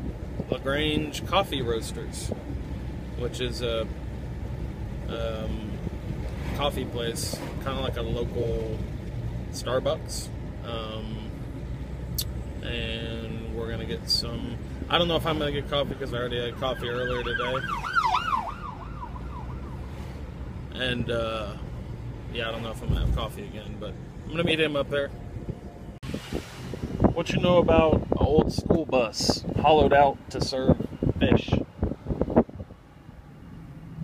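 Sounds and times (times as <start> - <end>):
car engine and tyres rumbling: 0.0 - 34.0
road noise hum: 0.0 - 34.0
emergency siren yelping: 16.5 - 20.0.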